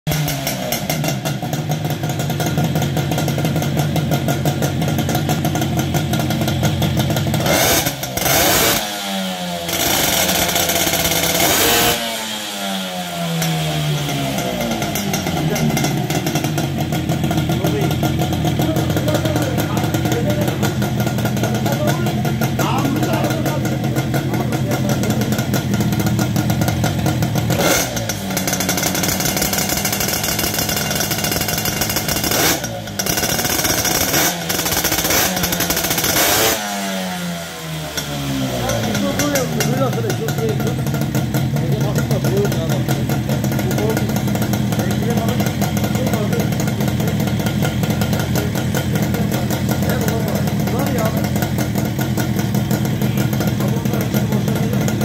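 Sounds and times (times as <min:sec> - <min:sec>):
moped engine revving: 0:00.0 - 0:55.0.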